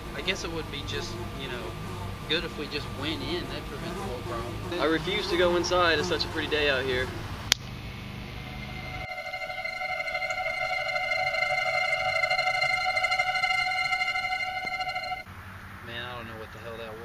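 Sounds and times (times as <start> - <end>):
mosquito buzzing whine: 0.0 - 15.3.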